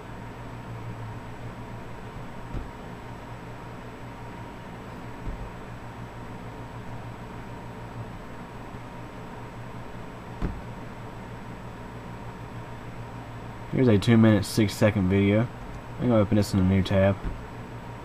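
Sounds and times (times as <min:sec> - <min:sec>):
computer and room hum and hiss: 0:00.0 - 0:18.0
soft low thumps: 0:01.3 - 0:06.0, 0:10.3 - 0:11.6, 0:17.2 - 0:17.8.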